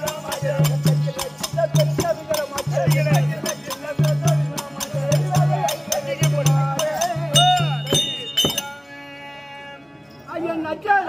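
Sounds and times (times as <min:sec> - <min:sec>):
small hand cymbals ringing: 0:00.0 - 0:09.0.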